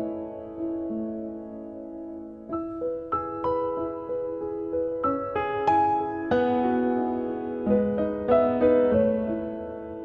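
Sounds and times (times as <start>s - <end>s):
slow piano music: 0.0s - 10.0s.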